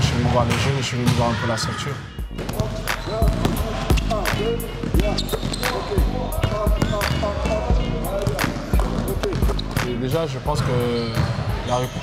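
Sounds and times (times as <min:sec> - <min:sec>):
music: 0:00.0 - 0:12.0
voices: 0:01.3 - 0:12.0
basketballs bouncing on gym floor: 0:02.3 - 0:09.8, 0:10.5 - 0:12.0.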